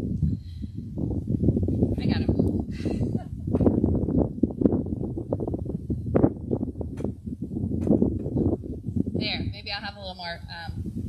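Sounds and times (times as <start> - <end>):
wind buffeting microphone: 0.0 - 11.0
microphone handling knocks and rustles: 1.2 - 9.4.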